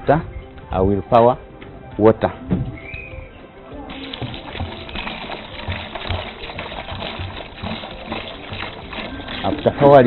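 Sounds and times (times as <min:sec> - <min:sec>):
water pouring into plastic bucket: 0:03.9 - 0:10.0.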